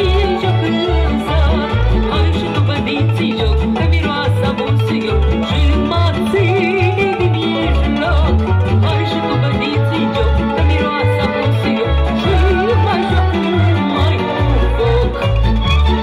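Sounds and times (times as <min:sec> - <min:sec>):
violins and plucked strings: 0:00.0 - 0:16.0
woman singing: 0:00.0 - 0:16.0.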